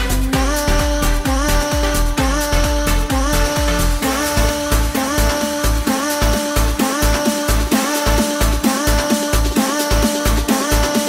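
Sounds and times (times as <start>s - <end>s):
electro house music: 0.0s - 11.0s.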